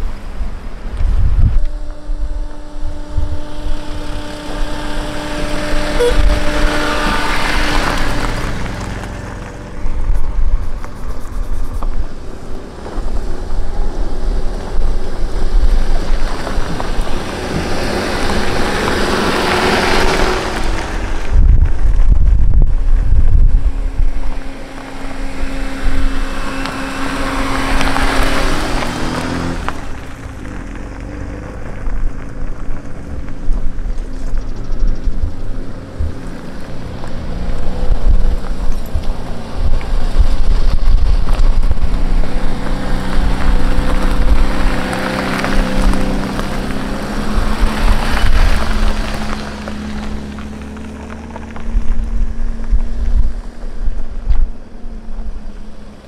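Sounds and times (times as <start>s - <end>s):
cars driving past on gravel: 0.0s - 56.0s
wind buffeting microphone: 0.0s - 56.0s.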